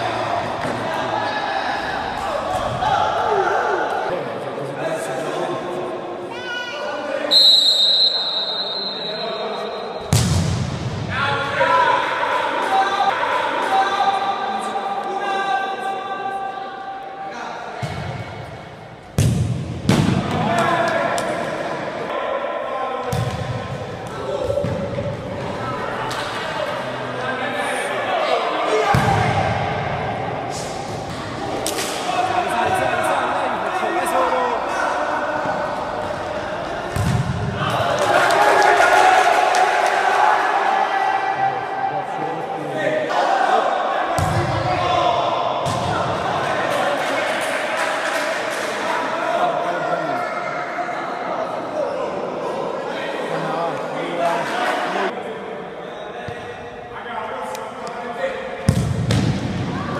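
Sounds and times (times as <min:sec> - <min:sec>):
players shouting and calling: 0:00.0 - 0:59.9.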